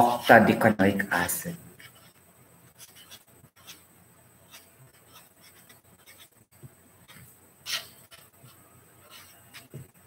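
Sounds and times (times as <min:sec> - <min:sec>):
pen scratching on paper: 0:01.8 - 0:06.4, 0:07.0 - 0:10.0.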